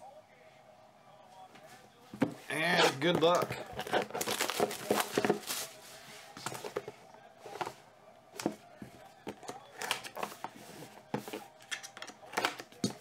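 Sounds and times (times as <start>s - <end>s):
plastic shrink wrap crinkling: 3.6s - 5.9s.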